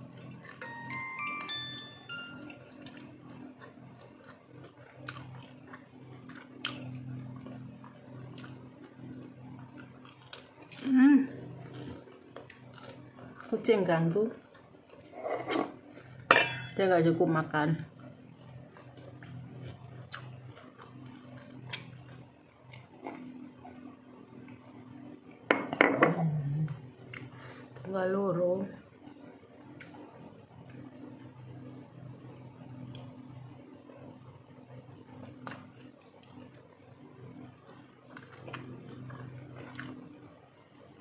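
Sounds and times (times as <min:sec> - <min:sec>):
low steady hum: 0:00.0 - 0:41.0
quiet chewing: 0:02.7 - 0:10.9, 0:11.6 - 0:13.8, 0:14.4 - 0:15.1, 0:18.7 - 0:23.5, 0:27.0 - 0:27.9, 0:35.2 - 0:36.9, 0:37.5 - 0:40.1.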